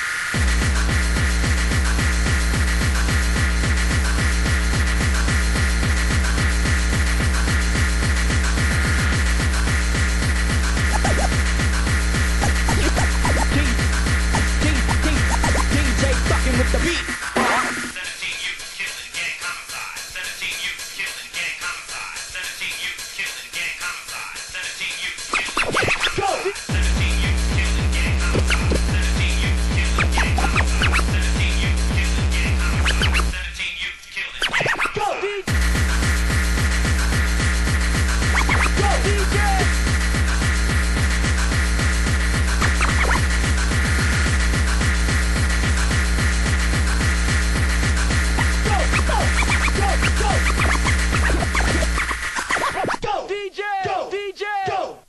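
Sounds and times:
turntable scratching: 0.0 - 53.4
fast hardcore kick drum: 0.4 - 17.2, 26.4 - 33.2, 35.5 - 52.0.

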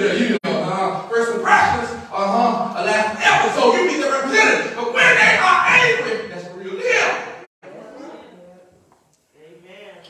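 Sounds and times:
man preaching: 0.0 - 7.5.

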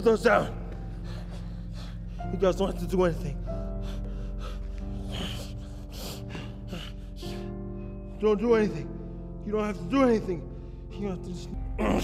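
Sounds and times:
film music sustained notes: 0.0 - 12.0
person gasping breaths: 0.4 - 2.4, 3.4 - 8.2.

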